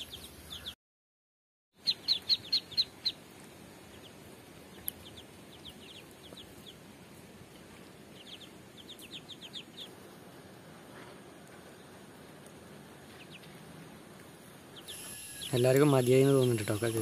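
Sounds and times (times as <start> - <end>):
ducklings peeping: 0.0 - 0.8, 1.8 - 10.4, 13.0 - 13.8, 14.5 - 17.0.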